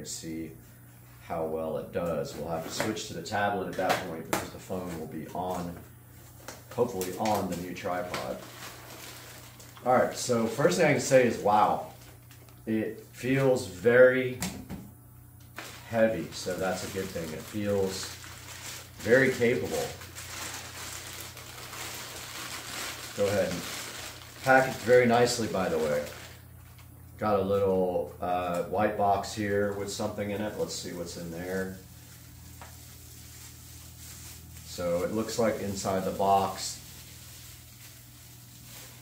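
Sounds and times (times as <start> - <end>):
steady low hum: 0.0 - 39.0
plastic bag rustling and crinkling: 4.7 - 12.5, 15.6 - 26.9, 29.0 - 39.0.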